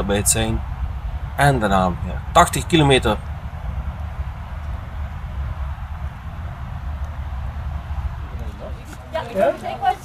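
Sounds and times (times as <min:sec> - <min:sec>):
passenger train rumbling: 0:00.0 - 0:10.0.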